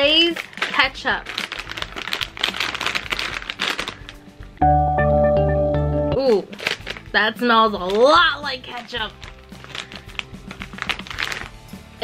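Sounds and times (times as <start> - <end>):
chip bag crinkling: 0.0 - 4.6, 6.4 - 12.0.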